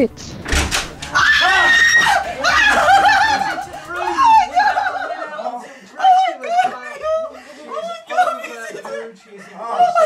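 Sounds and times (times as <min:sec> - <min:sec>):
woman screaming with delight: 0:01.2 - 0:05.0
people laughing: 0:01.2 - 0:10.0.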